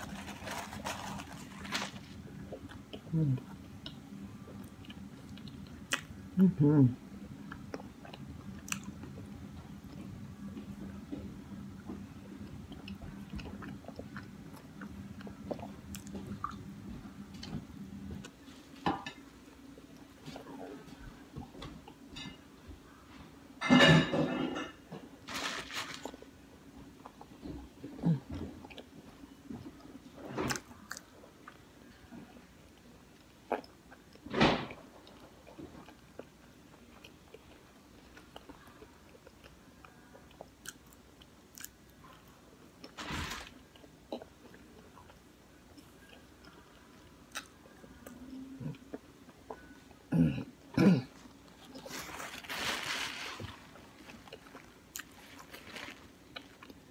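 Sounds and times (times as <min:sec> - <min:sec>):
low steady hum: 0:00.0 - 0:56.9.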